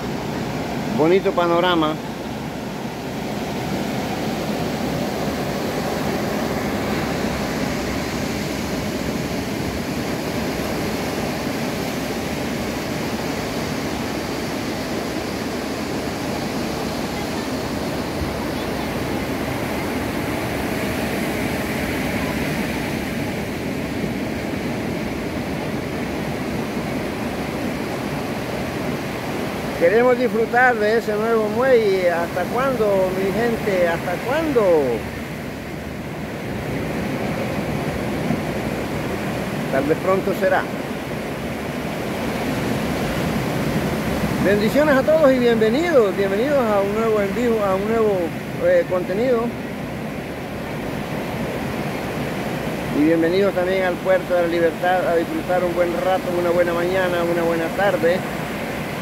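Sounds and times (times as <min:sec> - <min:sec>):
ocean surf breaking: 0:00.0 - 0:59.0.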